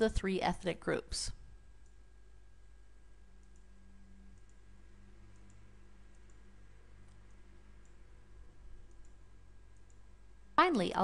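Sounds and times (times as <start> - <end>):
low steady room hum: 0.0 - 11.0
faint computer mouse clicks: 3.4 - 3.7, 4.3 - 4.6, 5.3 - 6.4.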